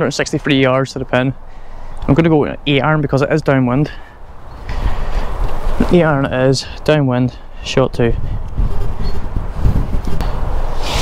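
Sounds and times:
wind rumbling on microphone: 4.3s - 6.6s, 7.7s - 11.0s
golf club swing whoosh: 9.7s - 11.0s.

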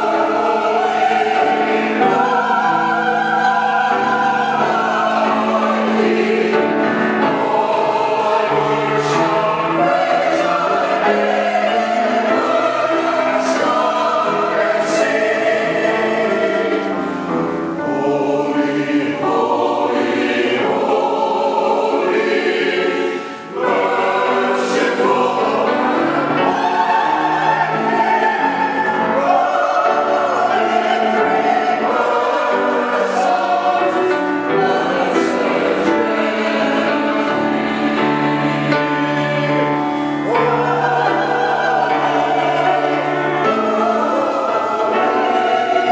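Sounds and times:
mixed choir singing: 0.0s - 45.9s.

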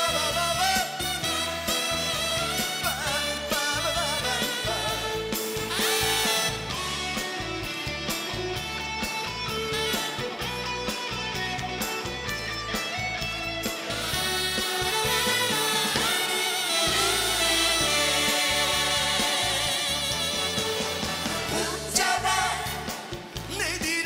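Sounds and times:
electric guitar lead: 0.0s - 21.9s
bass guitar: 0.0s - 24.0s.

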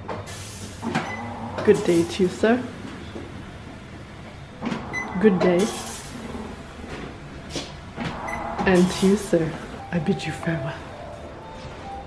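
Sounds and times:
low mechanical hum: 0.0s - 10.2s.

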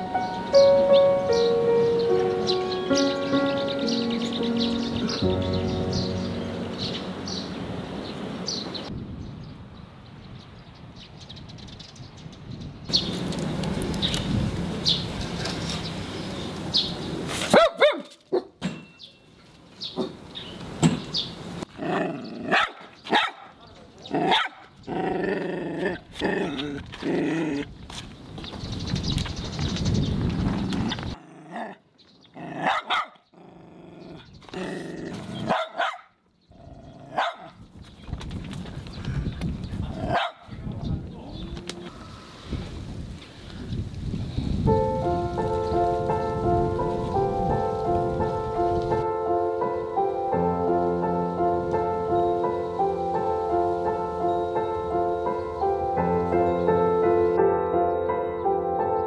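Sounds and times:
outdoor background noise: 0.0s - 59.0s
bird chirps: 0.2s - 9.6s, 10.3s - 13.2s, 18.8s - 21.4s
small dog barking: 17.5s - 18.6s, 21.9s - 23.6s, 24.2s - 24.7s, 32.6s - 33.2s, 35.4s - 36.2s, 37.1s - 37.6s, 40.0s - 40.5s.

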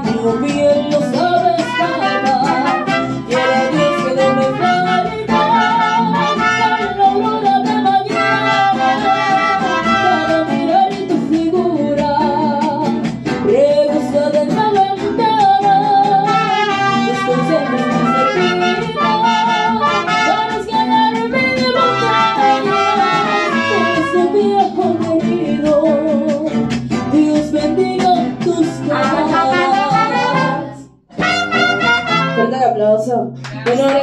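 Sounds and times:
woman singing into microphone: 0.0s - 30.8s
strummed guitars: 0.0s - 34.0s
trumpet: 1.6s - 7.2s, 8.0s - 10.6s, 16.2s - 20.7s, 21.7s - 24.4s, 29.0s - 32.7s.

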